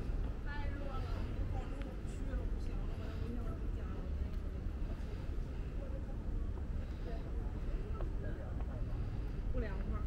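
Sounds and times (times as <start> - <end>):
faint indistinct voices: 0.0 - 10.0
steady low rumble: 0.0 - 10.0.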